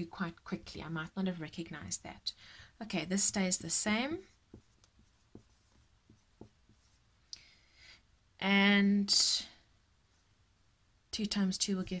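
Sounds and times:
marker writing on whiteboard: 3.0 - 7.0.

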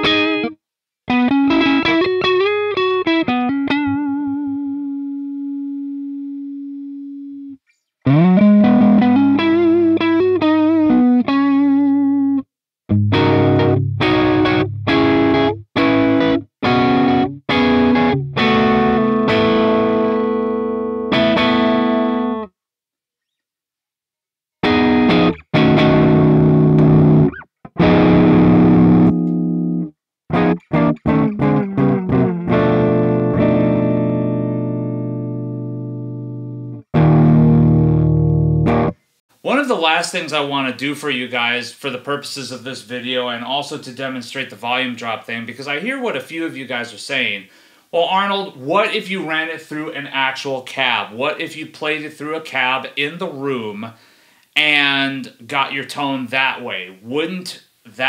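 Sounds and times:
electric guitar: 0.0 - 22.5, 24.6 - 39.0.

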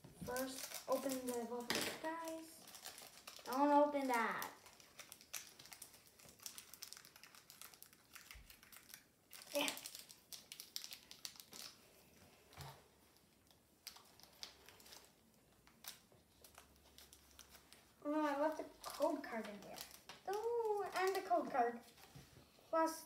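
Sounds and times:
foil wrapper crinkling: 0.2 - 11.9, 13.4 - 22.1.

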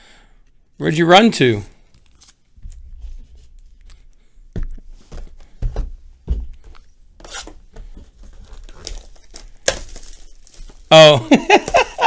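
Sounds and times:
plastic wrapping crinkling and tearing: 1.8 - 2.8, 8.1 - 12.0.

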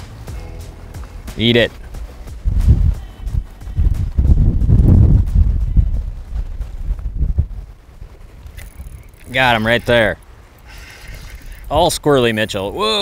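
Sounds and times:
wind buffeting microphone: 1.8 - 12.1.

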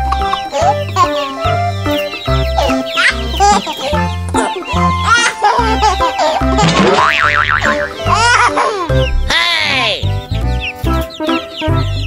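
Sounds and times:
bouncy background music: 0.0 - 12.0
springy boing whistle: 6.9 - 8.0.

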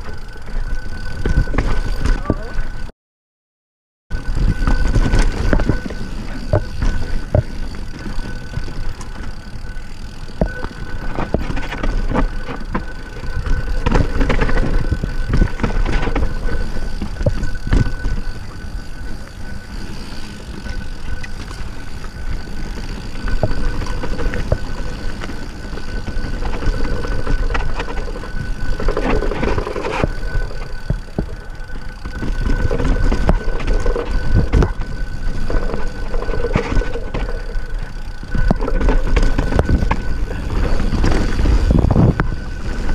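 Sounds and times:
wind rumbling on microphone: 4.1 - 42.9.

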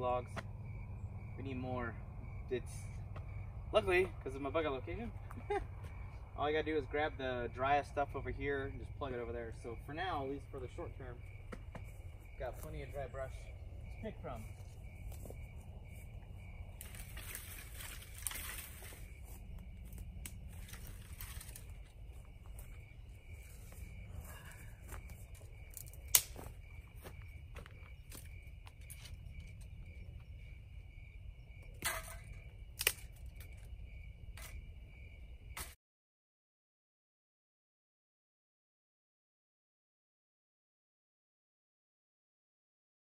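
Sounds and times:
insects chirring: 0.0 - 35.8
brush and branches rustling: 11.6 - 29.8
branch cracking: 16.8 - 19.2, 19.8 - 21.9, 25.3 - 26.5, 32.8 - 33.6.

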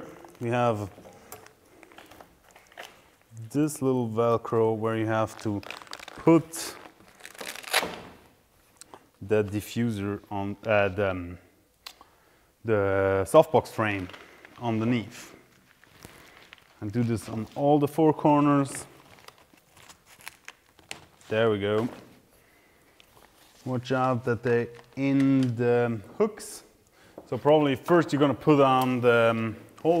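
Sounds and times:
fabric rustling and crinkling: 5.0 - 8.8, 13.8 - 25.6.

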